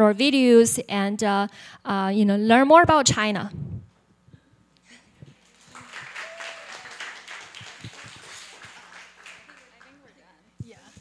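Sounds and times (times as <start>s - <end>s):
audience applauding: 5.4s - 10.2s.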